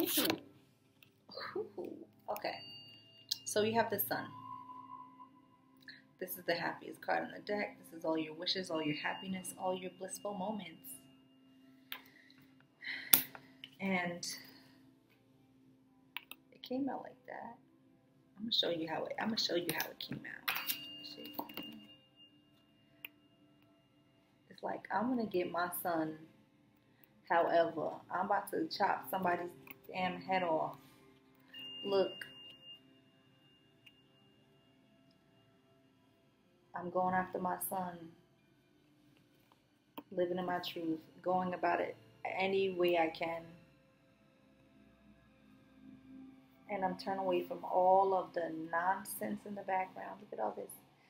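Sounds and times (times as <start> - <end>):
faint steady hum: 0.0 - 51.0
faint steady high tone: 1.3 - 51.0.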